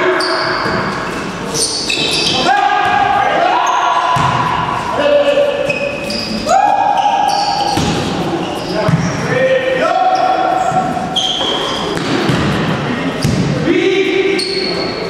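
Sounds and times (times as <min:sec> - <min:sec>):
sneakers squeaking on floor: 0:00.0 - 0:15.0
players calling out: 0:01.5 - 0:12.0.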